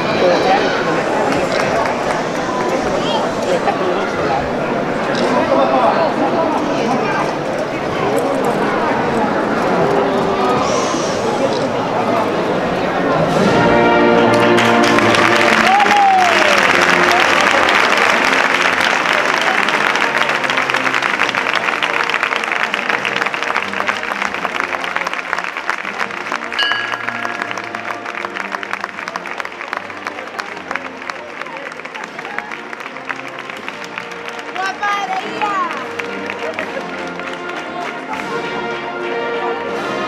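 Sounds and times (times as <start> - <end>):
crowd applauding: 0.0 - 4.3, 14.1 - 38.7
brass and wind band chord: 13.3 - 15.6, 26.5 - 29.4.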